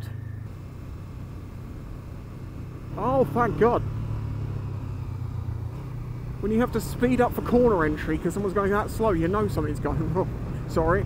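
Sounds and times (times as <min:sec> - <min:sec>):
motorcycle engine droning: 0:00.0 - 0:11.0
wind and road noise: 0:00.0 - 0:11.0.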